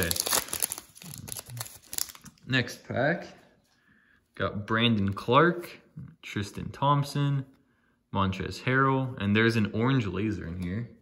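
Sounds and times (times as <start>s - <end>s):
foil wrapper crinkling and tearing: 0.0s - 2.3s.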